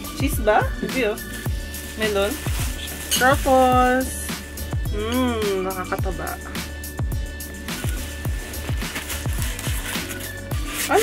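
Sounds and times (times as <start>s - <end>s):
background music with kick drums: 0.0s - 11.0s.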